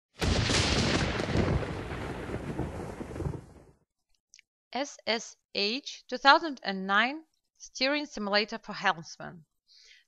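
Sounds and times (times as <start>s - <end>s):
rumbling thunderclap: 0.2s - 3.8s.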